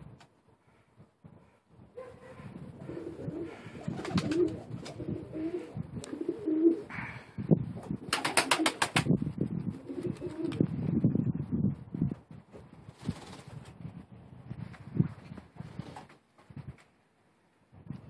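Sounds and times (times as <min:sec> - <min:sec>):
pigeons cooing: 0:02.2 - 0:07.1.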